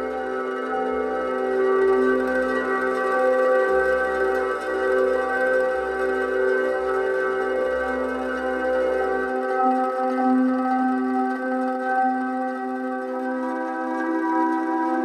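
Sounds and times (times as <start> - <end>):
ambient meditation music: 0.0 - 15.0.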